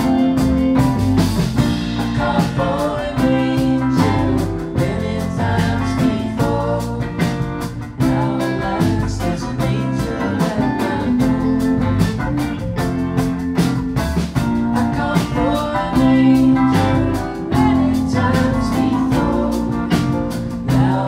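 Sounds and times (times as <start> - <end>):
acoustic and electric guitars: 0.0 - 21.0
steady drum beat: 0.0 - 21.0
person singing: 1.9 - 12.2, 14.8 - 21.0.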